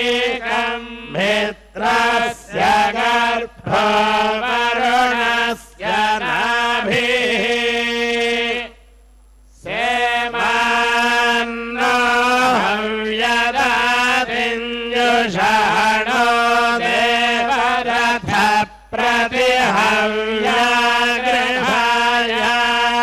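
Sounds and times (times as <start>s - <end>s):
priests chanting hymns: 0.0s - 8.8s, 9.6s - 23.0s.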